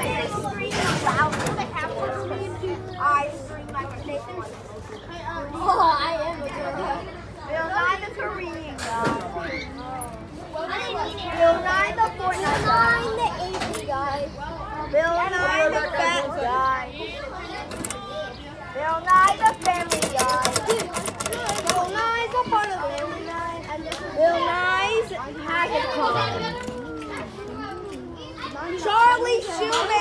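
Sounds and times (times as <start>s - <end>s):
people talking and chattering: 0.0s - 30.0s.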